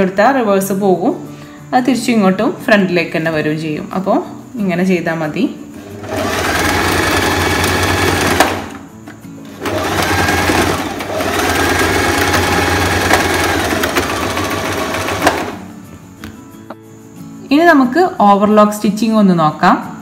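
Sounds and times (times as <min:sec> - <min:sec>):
electric sewing machine stitching: 0:05.8 - 0:08.8, 0:09.5 - 0:15.6.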